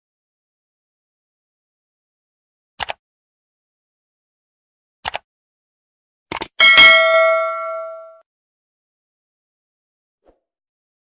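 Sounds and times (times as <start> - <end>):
quick mouse-like clicks: 2.8 - 3.0, 5.0 - 5.3, 6.3 - 6.5
notification bell ringing: 6.6 - 8.2.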